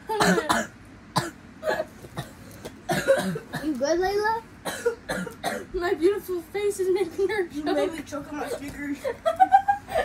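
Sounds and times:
girl coughing: 0.1s - 3.8s, 4.6s - 5.8s.

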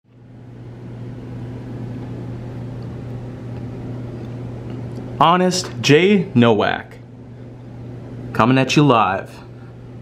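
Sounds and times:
low mechanical hum: 0.1s - 10.0s.

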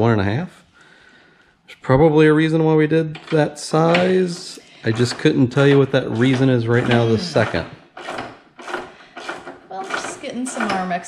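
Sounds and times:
person talking: 1.7s - 7.8s
hex key scraping metal grille: 3.1s - 11.0s.

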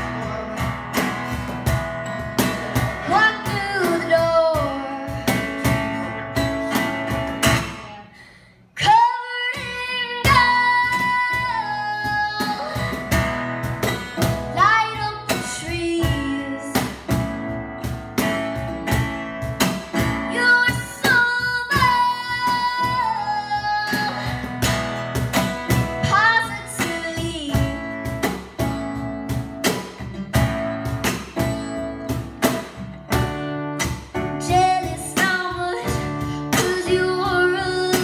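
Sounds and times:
acoustic guitar strumming: 0.0s - 8.2s, 8.8s - 38.0s
girl singing: 2.8s - 6.9s, 8.8s - 13.2s, 13.8s - 17.1s, 20.0s - 24.8s, 25.7s - 28.0s, 34.2s - 38.0s.

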